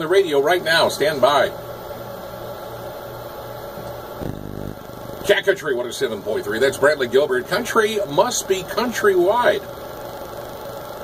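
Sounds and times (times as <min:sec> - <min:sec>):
electrical hum and hiss: 0:00.0 - 0:11.0.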